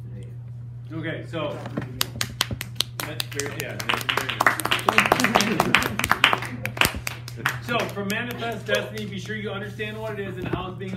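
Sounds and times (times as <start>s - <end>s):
people clapping: 1.9s - 9.4s.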